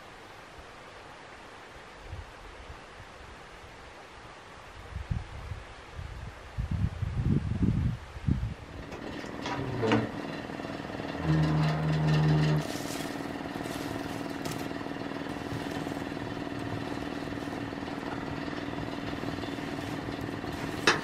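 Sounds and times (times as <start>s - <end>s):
fire roaring in stove: 8.5s - 21.0s
loud low hum: 8.6s - 21.0s
metal rod poking fire: 8.8s - 21.0s.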